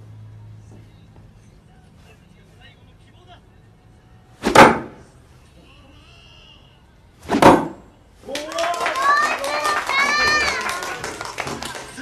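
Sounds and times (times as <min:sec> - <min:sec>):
dart striking a dartboard: 0:04.4 - 0:05.0, 0:07.3 - 0:07.8.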